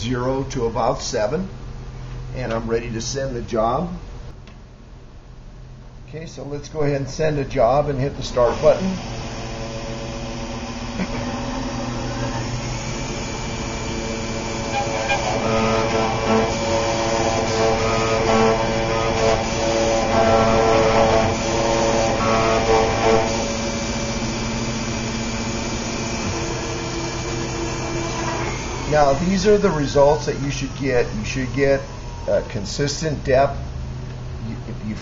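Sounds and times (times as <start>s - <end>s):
engraving spindle whine: 7.7s - 33.3s
motor hum: 7.7s - 34.6s.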